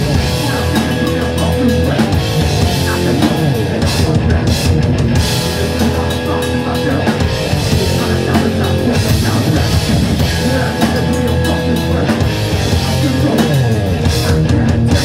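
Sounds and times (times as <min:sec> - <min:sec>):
distorted electric guitar: 0:00.0 - 0:15.0
drum kit: 0:00.0 - 0:15.0.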